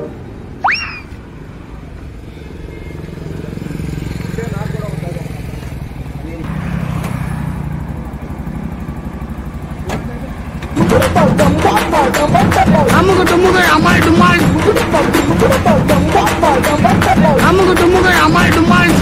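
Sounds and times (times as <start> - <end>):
auto rickshaw engine putter: 1.1 - 19.0.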